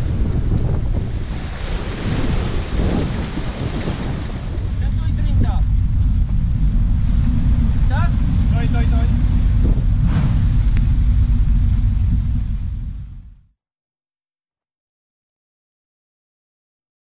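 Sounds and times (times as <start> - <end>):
rough sea rushing: 0.0 - 13.3
wind buffeting microphone: 0.0 - 13.5.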